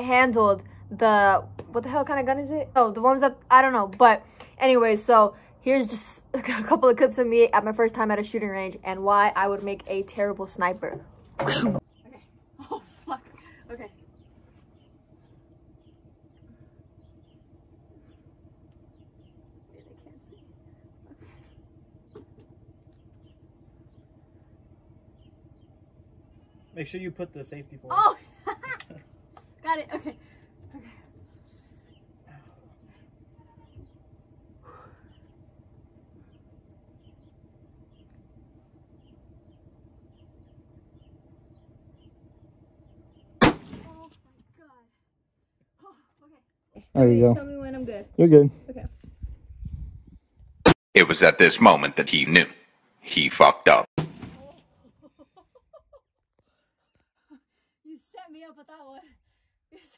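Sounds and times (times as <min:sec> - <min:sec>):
rifle shot: 0:43.4 - 0:44.0, 0:54.0 - 0:54.6.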